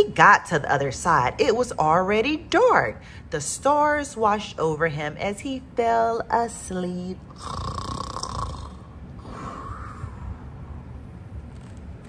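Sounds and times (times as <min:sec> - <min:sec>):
woman imitating snoring: 0:07.4 - 0:10.2.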